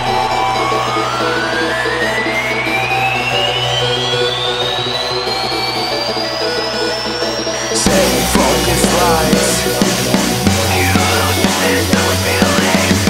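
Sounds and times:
rising synthesizer tone: 0.0s - 11.9s
held synth chord: 0.0s - 12.3s.

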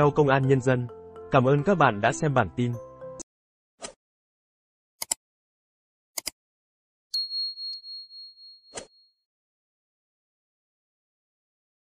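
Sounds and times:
short clicks: 5.0s - 5.2s, 6.2s - 6.4s
notification bell ding: 7.2s - 9.0s.

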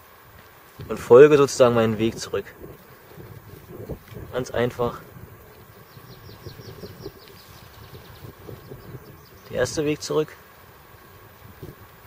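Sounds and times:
low rumble of wind: 0.0s - 12.0s.

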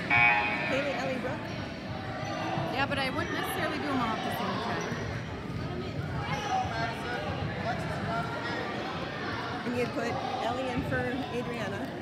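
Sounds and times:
spectators' voices: 0.0s - 12.0s.

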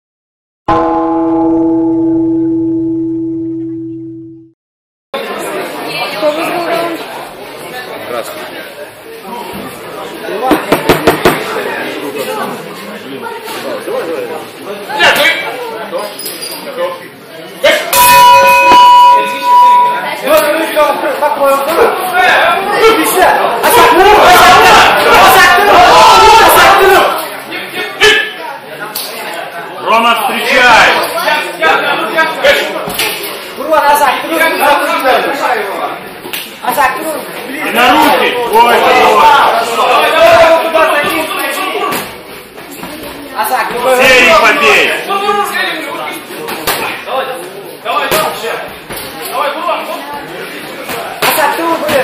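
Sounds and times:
gong-like metal tone ringing: 0.7s - 4.6s, 18.0s - 20.0s
murmur of voices in a hall: 5.2s - 52.0s
people shouting encouragement: 21.8s - 27.2s.

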